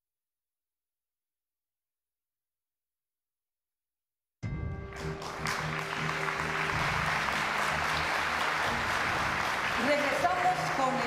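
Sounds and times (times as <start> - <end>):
theme music with low notes: 4.4 - 11.0
audience applauding: 4.8 - 11.0.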